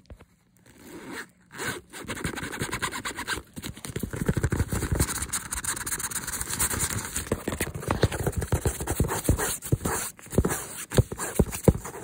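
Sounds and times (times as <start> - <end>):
zipper being pulled: 0.7 - 3.4.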